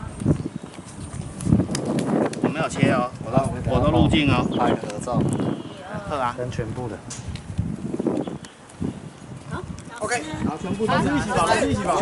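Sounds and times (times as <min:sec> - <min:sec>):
footsteps on stone paving: 0:00.0 - 0:12.0.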